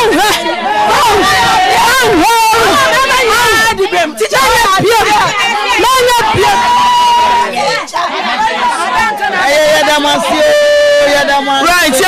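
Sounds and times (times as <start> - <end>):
people talking loudly: 0.0 - 12.0.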